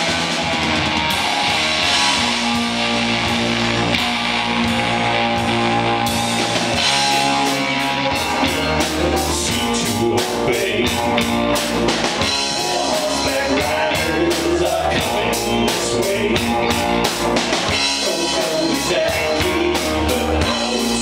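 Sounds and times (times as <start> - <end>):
drum kit: 0.0 - 21.0
electric bass guitar: 0.0 - 21.0
live rock band playing: 0.0 - 21.0
man singing into microphone: 8.6 - 11.1, 12.5 - 16.6, 17.9 - 21.0.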